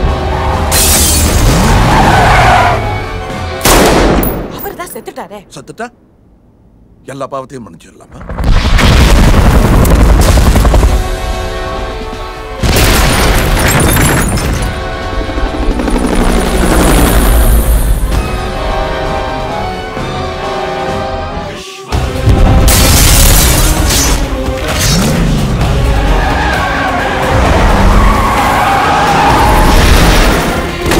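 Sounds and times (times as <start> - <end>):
film score music: 0.0 - 8.7, 9.3 - 30.9
helicopter rotor and engine: 14.7 - 17.9.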